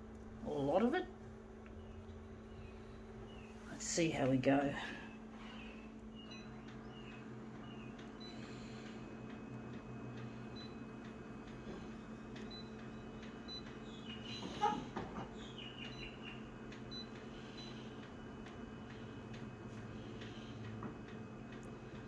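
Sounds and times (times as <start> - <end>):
photocopier hum: 0.0 - 22.0.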